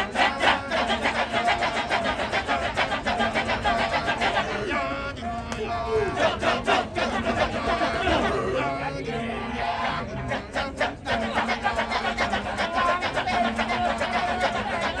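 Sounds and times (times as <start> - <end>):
male chorus chanting: 0.0 - 15.0
sliding sung voices: 0.0 - 15.0.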